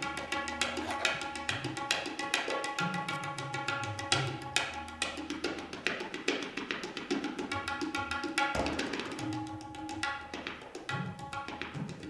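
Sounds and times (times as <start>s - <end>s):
tabla finger strokes: 0.0s - 12.0s.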